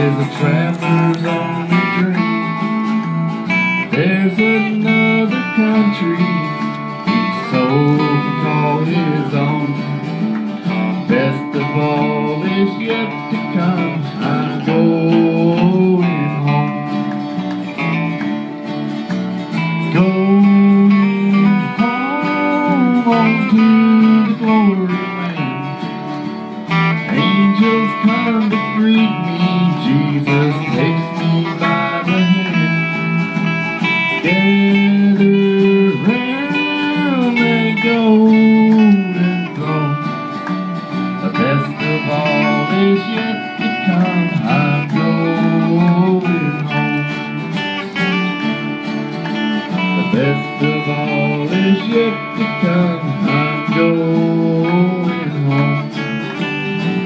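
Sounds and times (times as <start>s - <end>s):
acoustic guitars strumming: 0.0s - 57.0s
bass guitar: 0.0s - 57.0s
lead guitar with sliding notes: 0.0s - 57.0s.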